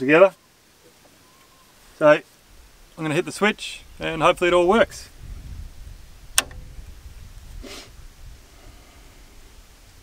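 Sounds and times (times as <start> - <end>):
soft hiss: 0.0 - 10.0
low steady rumble: 3.8 - 9.8
switch click: 6.3 - 6.7.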